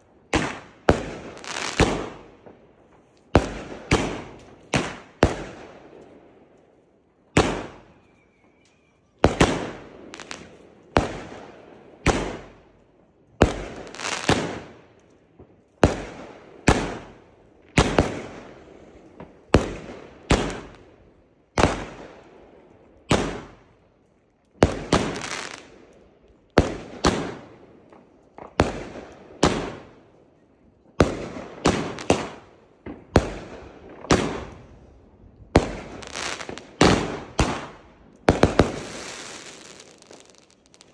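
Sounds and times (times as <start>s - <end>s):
firework crackling: 0.4s - 5.5s, 24.6s - 25.8s, 31.2s - 40.9s.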